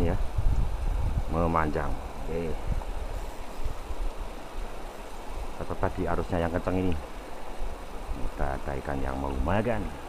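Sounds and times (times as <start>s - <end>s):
river current rushing: 0.0s - 10.0s.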